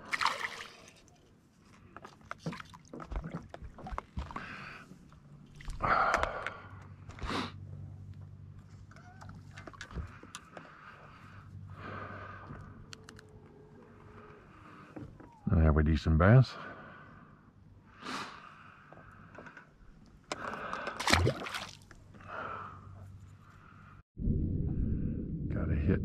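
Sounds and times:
water sloshing: 0:00.0 - 0:01.2, 0:01.9 - 0:04.4, 0:20.4 - 0:22.2
fish splashing at surface: 0:21.0 - 0:21.9.

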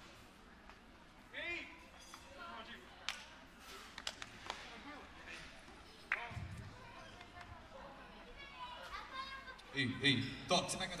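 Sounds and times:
scattered voices in a hall: 0:00.0 - 0:11.0.

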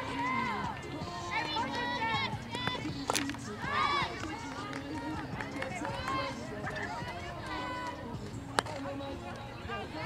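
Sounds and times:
people shouting: 0:00.0 - 0:02.9, 0:03.6 - 0:08.1.

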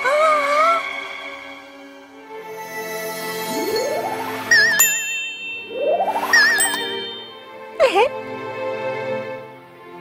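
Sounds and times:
soft background music: 0:00.0 - 0:10.0
rising swish with twinkling ding: 0:03.4 - 0:07.7.

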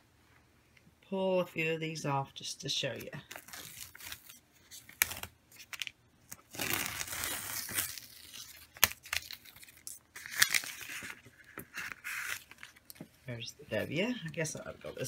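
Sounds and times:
vinyl stencil crinkling and tearing: 0:03.2 - 0:13.0.

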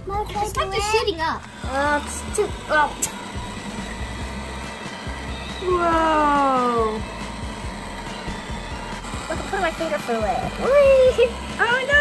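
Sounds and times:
small motor humming: 0:00.0 - 0:12.0.

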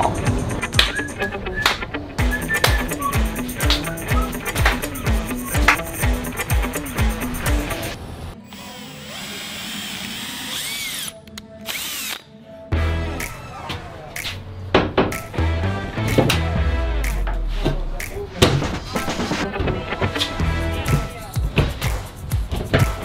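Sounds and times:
background music with a beat: 0:00.0 - 0:08.0, 0:12.7 - 0:23.0
power drill whining: 0:08.5 - 0:12.2.

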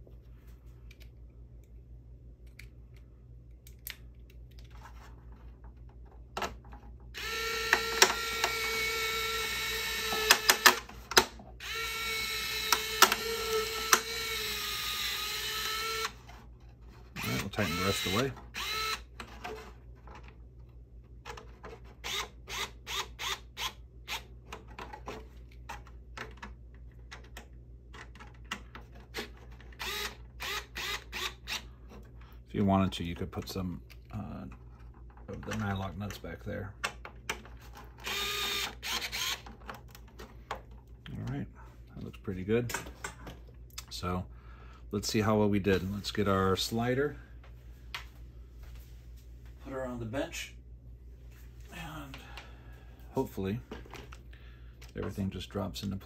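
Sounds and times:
electric screwdriver running: 0:07.2 - 0:10.9, 0:11.6 - 0:16.2, 0:17.2 - 0:19.1, 0:29.8 - 0:31.5, 0:38.0 - 0:39.4.

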